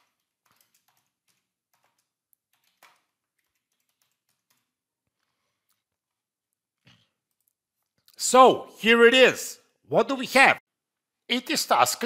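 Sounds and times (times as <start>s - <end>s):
faint keyboard typing: 0.0s - 6.2s, 6.8s - 8.2s.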